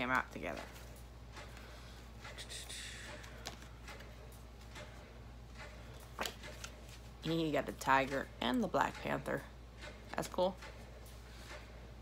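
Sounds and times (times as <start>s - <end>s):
steady low hum: 0.0s - 12.0s
cards rustling and flicking: 6.0s - 7.1s.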